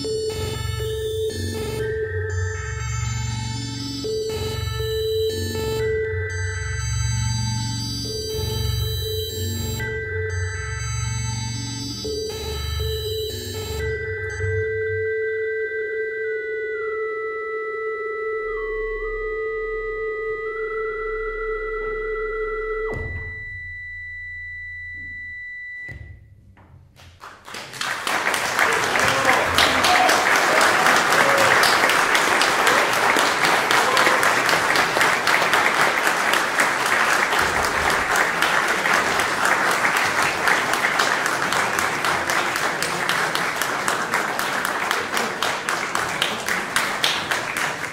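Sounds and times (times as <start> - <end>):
eight-bit synthesizer tones: 0.0 - 26.1
audience applauding: 27.0 - 47.9.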